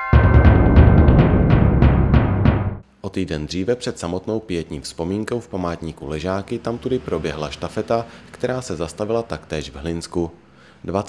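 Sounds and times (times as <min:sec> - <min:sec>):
fast drum strikes: 0:00.0 - 0:02.8.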